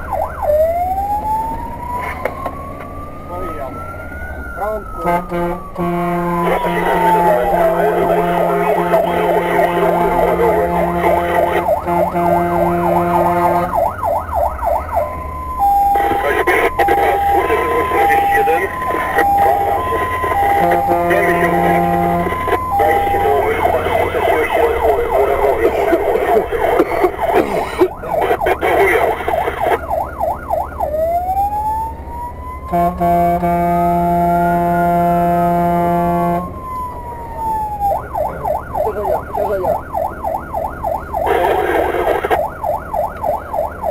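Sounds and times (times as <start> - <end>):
engine and road rumble: 0.0 - 43.9
fire engine siren: 0.0 - 43.9.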